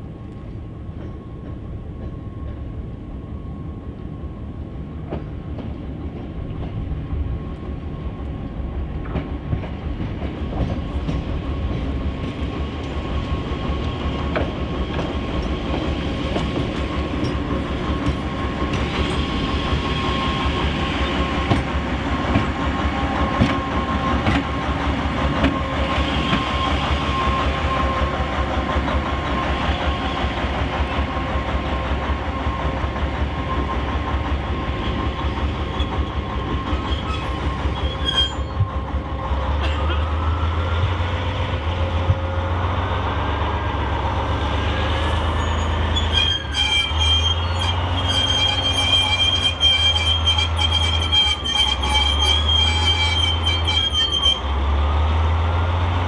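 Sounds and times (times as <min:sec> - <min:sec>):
diesel locomotive engine rumble: 0:00.0 - 0:56.0.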